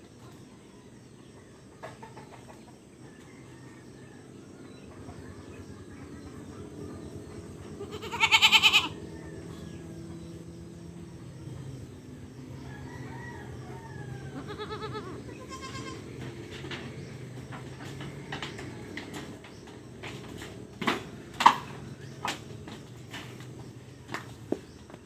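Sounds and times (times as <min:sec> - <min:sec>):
goat bleating: 0:07.7 - 0:09.0, 0:14.3 - 0:16.2.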